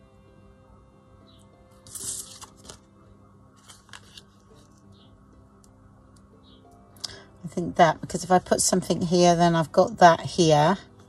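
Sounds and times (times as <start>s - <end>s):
faint background music: 0.0s - 11.0s
paper tags sliding and rustling: 1.9s - 2.8s, 3.6s - 4.7s.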